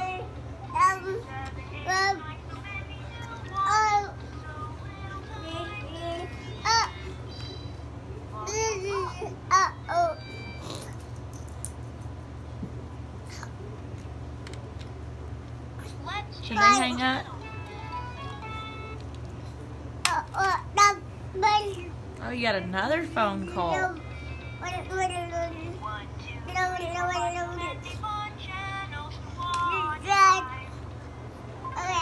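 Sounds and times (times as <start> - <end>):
steady low hum: 0.0 - 32.0
faint clicks and taps: 19.0 - 19.4.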